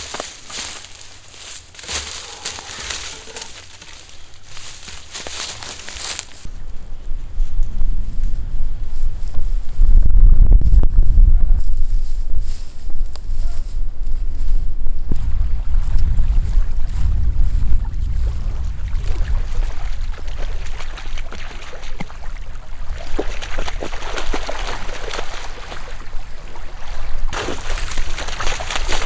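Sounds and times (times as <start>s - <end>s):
dry brush crackling: 0.0s - 6.5s, 27.3s - 29.0s
wind buffeting microphone: 2.2s - 29.0s.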